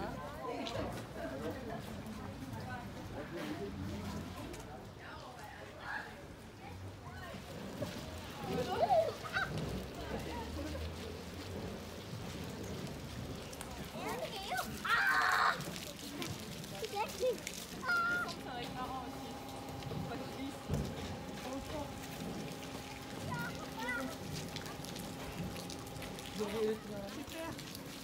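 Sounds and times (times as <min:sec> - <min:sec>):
indistinct voices outdoors: 0:00.0 - 0:28.0.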